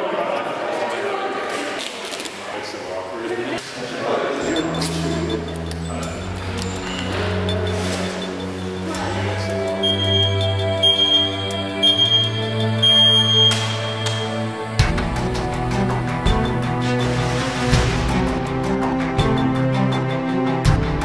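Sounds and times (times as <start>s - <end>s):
indistinct chatter of people: 0.0s - 14.4s
music of low sustained notes: 4.5s - 21.0s.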